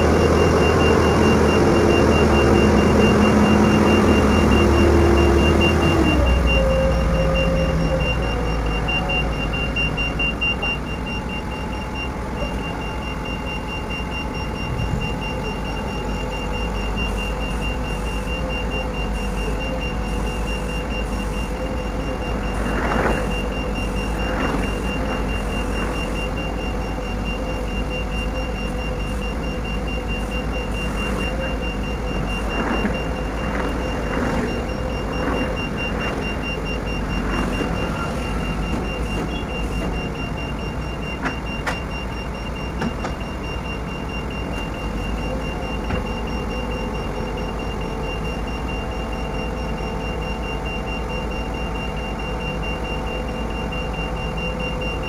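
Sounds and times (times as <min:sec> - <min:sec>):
crane diesel engine and hydraulics: 0:00.0 - 0:55.0
high steady warning tone: 0:00.0 - 0:55.0.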